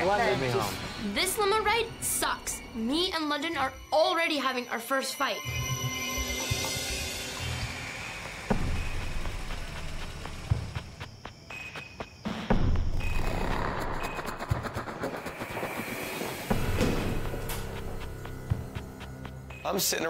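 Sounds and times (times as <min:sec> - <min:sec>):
background music: 0:00.0 - 0:20.0
whooshes: 0:13.0 - 0:18.5.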